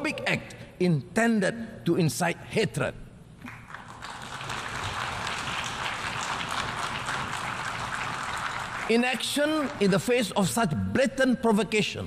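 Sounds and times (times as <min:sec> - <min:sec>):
audience applauding: 0:03.5 - 0:10.2.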